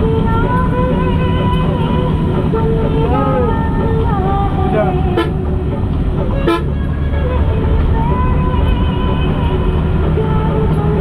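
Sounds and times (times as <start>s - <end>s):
vehicle road and engine rumble: 0.0s - 11.0s.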